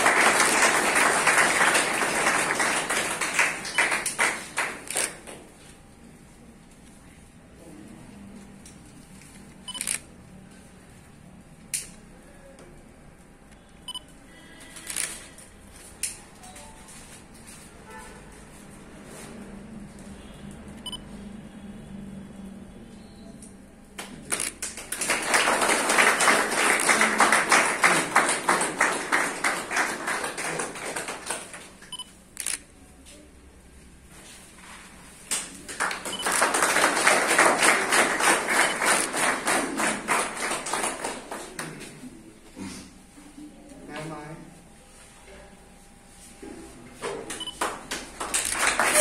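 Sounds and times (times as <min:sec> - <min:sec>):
people clapping: 0:00.0 - 0:05.6, 0:23.9 - 0:32.0, 0:35.2 - 0:42.2, 0:46.9 - 0:49.0
low room noise: 0:00.0 - 0:49.0.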